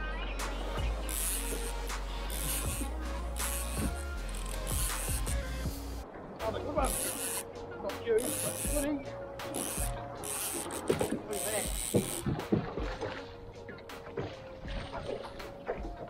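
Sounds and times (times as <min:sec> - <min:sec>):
water splashing: 0:00.5 - 0:16.0
sharp knocks on boat: 0:10.8 - 0:13.2.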